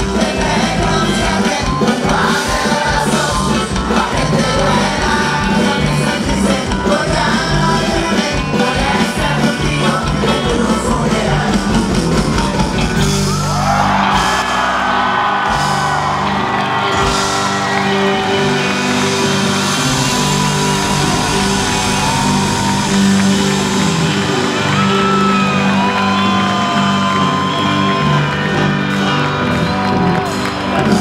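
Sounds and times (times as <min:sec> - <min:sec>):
drums: 0:00.0 - 0:31.0
electric guitar: 0:00.0 - 0:31.0.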